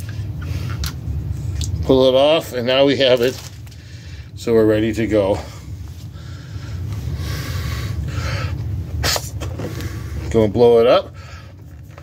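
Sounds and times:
steady low rumble: 0:00.0 - 0:12.0
man breathing: 0:03.7 - 0:04.4, 0:05.4 - 0:08.8, 0:11.1 - 0:11.6.

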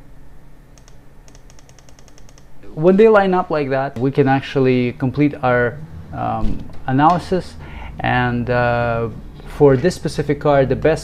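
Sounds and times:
computer key clicks: 0:00.8 - 0:02.5.

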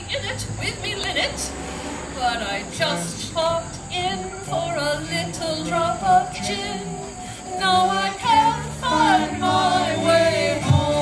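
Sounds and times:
woman singing: 0:02.2 - 0:11.0
acoustic guitar: 0:02.8 - 0:11.0
acoustic band playing: 0:04.1 - 0:11.0.

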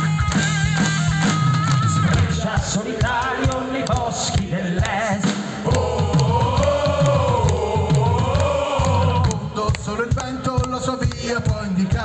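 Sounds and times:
heavy metal band playing: 0:05.1 - 0:10.2.

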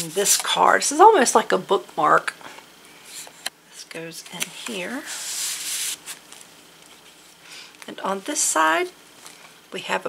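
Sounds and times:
paper card sliding against paper: 0:04.9 - 0:06.2.

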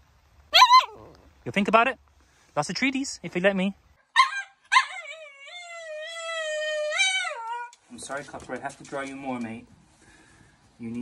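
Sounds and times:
dog yipping: 0:00.5 - 0:01.2, 0:04.1 - 0:07.8
dog whining howl: 0:00.5 - 0:01.3, 0:04.2 - 0:07.8.

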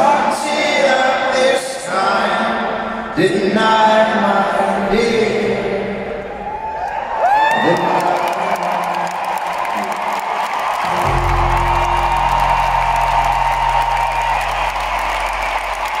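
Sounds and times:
crowd cheering and applauding: 0:06.4 - 0:16.0
low held note: 0:10.8 - 0:16.0.

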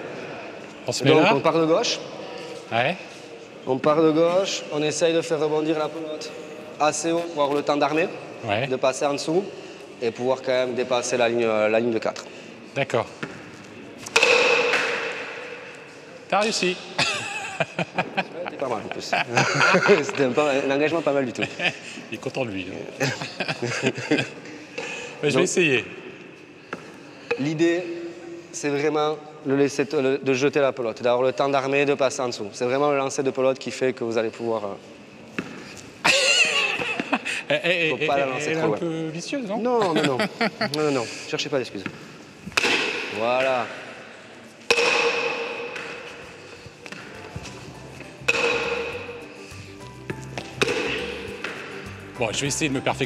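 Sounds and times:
men talking indistinctly: 0:00.8 - 0:13.2, 0:18.1 - 0:23.8, 0:25.0 - 0:26.0, 0:37.4 - 0:42.0, 0:52.1 - 0:53.0
ball rebounding off walls: 0:14.1 - 0:15.5, 0:48.2 - 0:49.1, 0:50.4 - 0:51.6
ball struck with wooden bat: 0:14.1 - 0:15.6, 0:41.8 - 0:43.2, 0:44.7 - 0:46.2, 0:48.2 - 0:49.2, 0:50.4 - 0:51.7
men laughing: 0:17.0 - 0:20.4, 0:21.0 - 0:22.1, 0:23.0 - 0:24.8, 0:36.0 - 0:38.1, 0:39.7 - 0:41.0.

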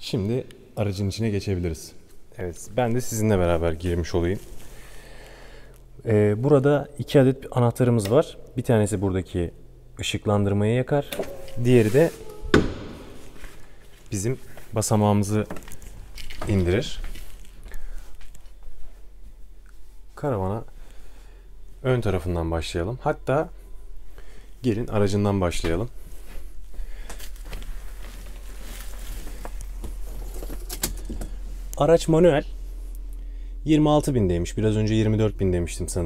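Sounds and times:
steady low hum: 0:00.0 - 0:36.0
handling noise: 0:11.1 - 0:14.7, 0:25.7 - 0:33.1
sharp thunk: 0:12.5 - 0:13.2.

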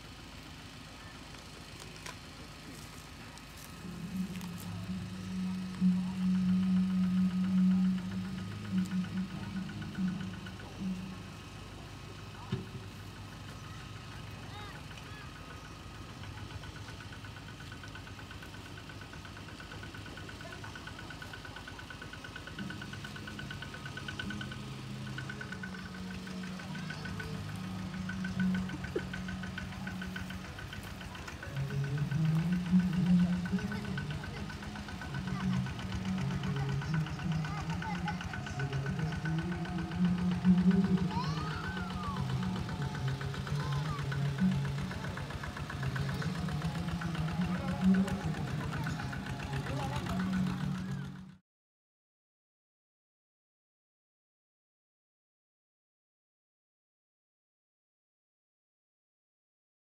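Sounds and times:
steady mechanical hum: 0:00.0 - 0:51.4.

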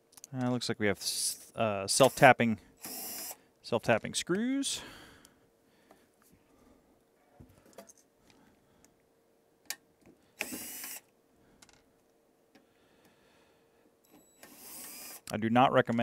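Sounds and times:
cordless drill running: 0:02.0 - 0:03.4, 0:10.4 - 0:11.1, 0:14.4 - 0:15.3.

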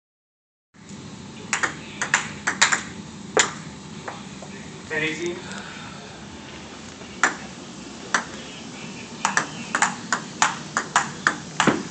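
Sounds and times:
table tennis ball clicking: 0:01.5 - 0:03.6, 0:07.2 - 0:07.4, 0:09.2 - 0:11.9.

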